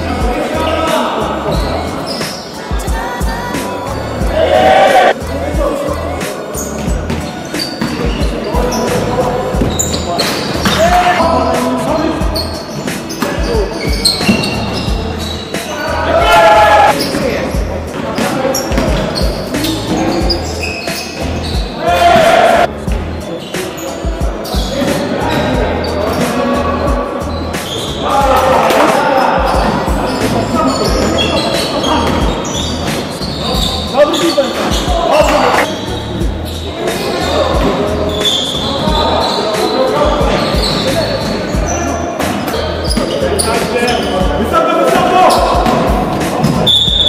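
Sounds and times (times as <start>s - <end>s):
players calling out: 0.0s - 47.0s.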